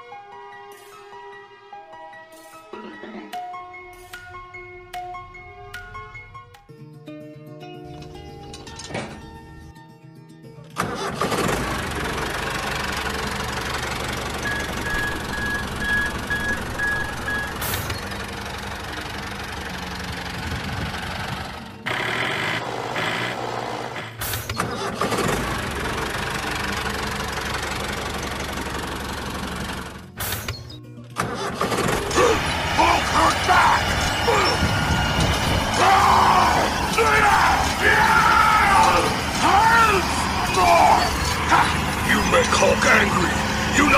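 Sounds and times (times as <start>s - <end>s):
background music: 0.0s - 13.5s, 29.9s - 43.9s
tractor engine: 8.0s - 9.7s, 10.8s - 43.9s.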